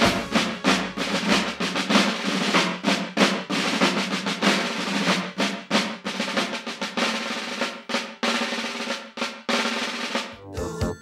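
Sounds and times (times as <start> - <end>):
low held note: 0.0 - 1.8
snare drum rolls: 0.0 - 10.4.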